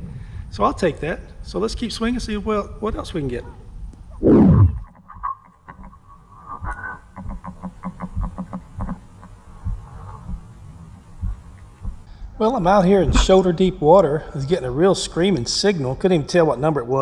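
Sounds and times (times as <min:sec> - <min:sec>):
falling swoosh: 0:04.2 - 0:04.8.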